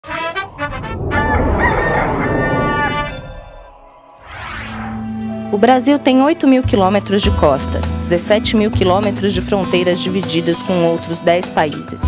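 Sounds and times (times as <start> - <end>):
music: 0.0 - 1.0, 2.9 - 12.0
rooster crowing: 1.0 - 3.7.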